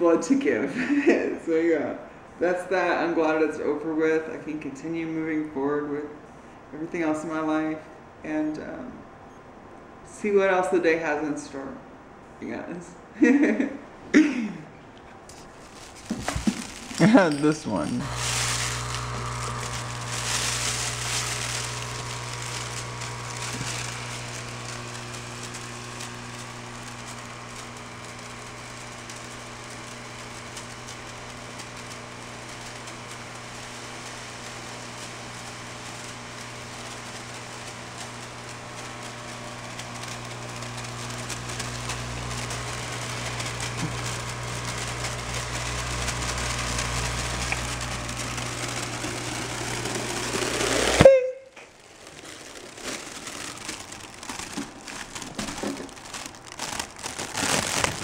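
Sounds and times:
vaporizer air pump humming: 15.2s - 58.0s.

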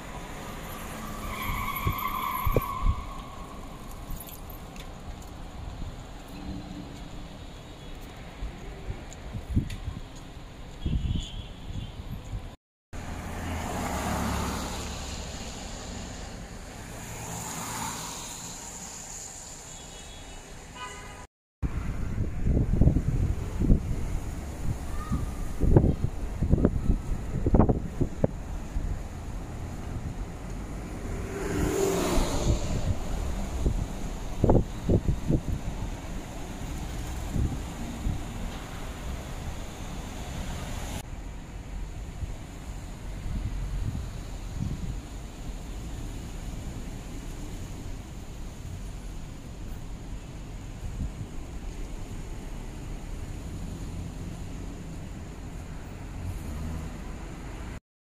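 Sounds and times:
vehicles passing: 0.0s - 10.9s, 11.6s - 57.8s
car engine and road noise: 0.0s - 57.8s
wind buffeting microphone: 21.6s - 39.6s, 43.0s - 45.2s.

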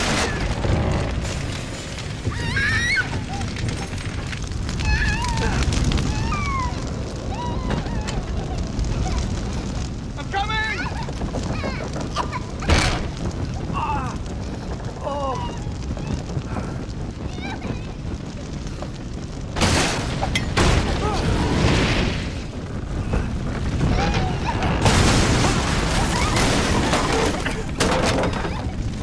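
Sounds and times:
fire roaring and crackling: 0.0s - 29.0s.

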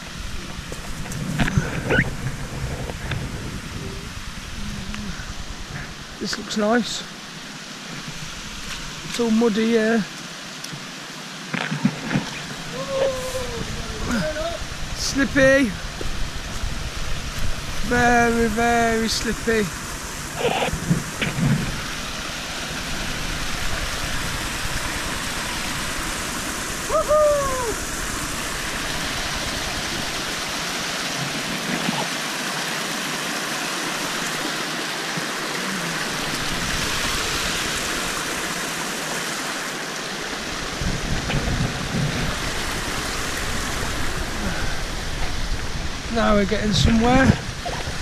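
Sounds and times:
stream rushing over stones: 0.0s - 48.0s.

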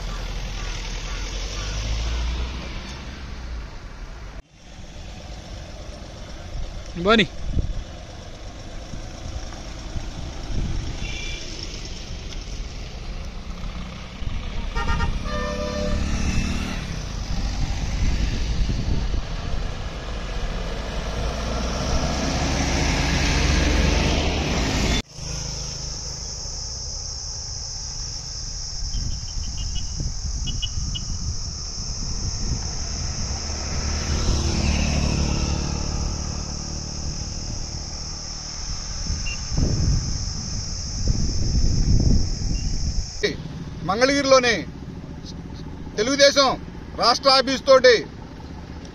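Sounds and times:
cars driving past: 0.0s - 48.9s
car horn: 11.0s - 11.6s, 14.6s - 16.4s, 28.9s - 33.1s, 39.0s - 44.5s
steady high hiss: 25.0s - 48.1s.

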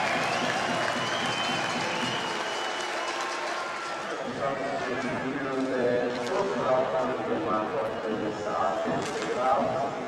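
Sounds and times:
crowd cheering and applauding: 0.0s - 4.5s.

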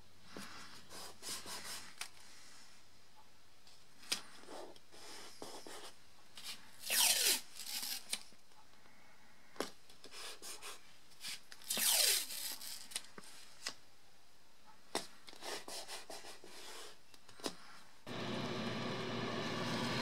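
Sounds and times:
fingers rubbing tape down: 6.8s - 8.3s, 11.2s - 13.0s
tape ripping off roll: 6.8s - 8.3s.

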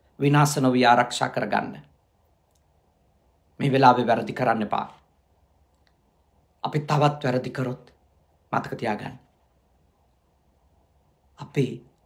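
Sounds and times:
man speaking: 0.2s - 1.9s, 3.6s - 5.0s, 6.6s - 9.3s, 11.3s - 12.0s.

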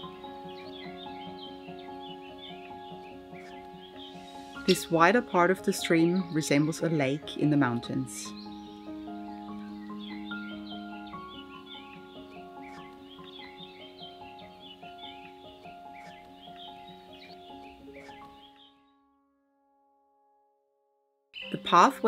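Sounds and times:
birds chirping: 0.0s - 19.0s, 21.4s - 22.0s
slow background music: 0.0s - 20.2s, 21.4s - 22.0s.

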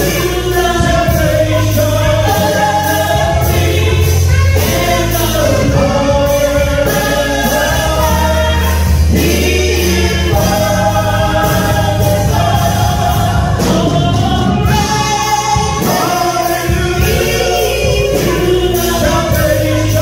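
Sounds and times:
bass line: 0.0s - 20.0s
gospel choir singing in harmony: 0.0s - 20.0s
steady beat: 0.0s - 20.0s.

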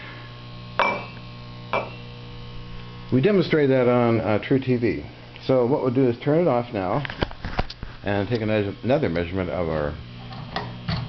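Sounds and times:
generator electrical hum: 0.0s - 11.0s.

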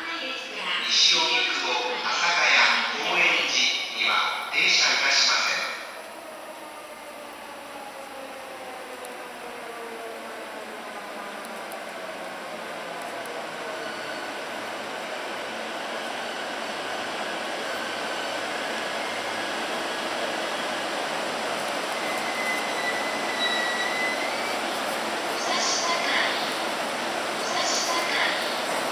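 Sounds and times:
high brake squeal: 13.8s - 14.4s, 22.0s - 24.7s.

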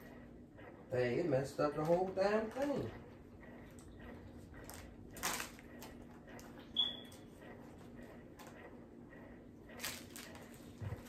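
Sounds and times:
brief high squeak: 6.7s - 7.2s.

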